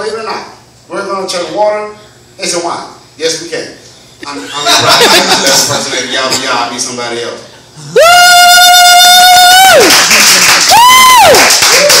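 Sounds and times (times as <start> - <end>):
man shouting woo: 7.9 - 10.0, 10.7 - 12.0
audience applause and cheering: 8.0 - 12.0.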